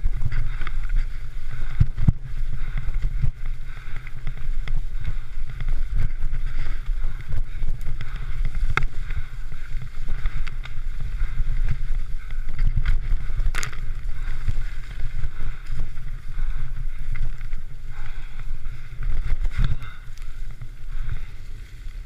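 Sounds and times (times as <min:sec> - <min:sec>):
bike rattling over rough ground: 0:00.0 - 0:22.0
wind buffeting microphone: 0:00.0 - 0:22.0.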